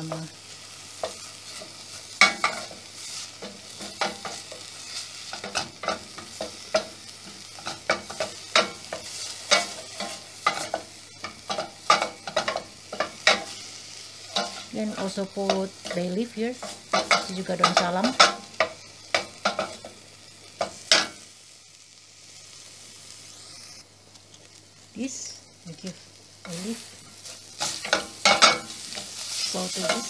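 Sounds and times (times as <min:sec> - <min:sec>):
light sizzle of frying: 0:00.0 - 0:30.0.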